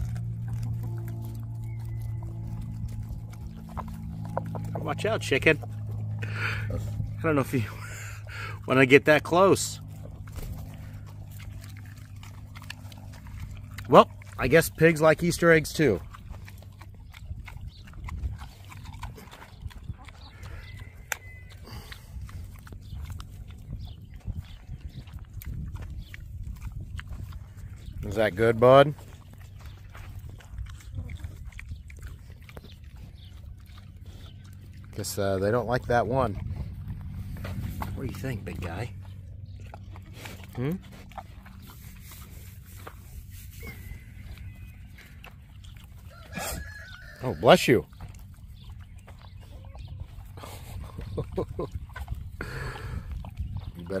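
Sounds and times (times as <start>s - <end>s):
pig snuffling and chewing: 0.0s - 54.0s.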